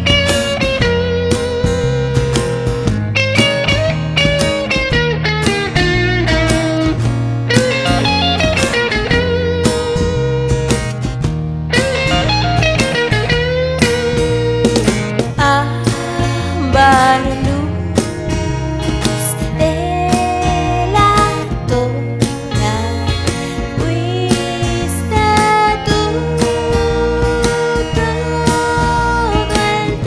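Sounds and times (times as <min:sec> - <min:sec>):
electric guitar lead with bent notes: 0:00.0 - 0:30.0
strummed acoustic guitar: 0:00.0 - 0:30.0.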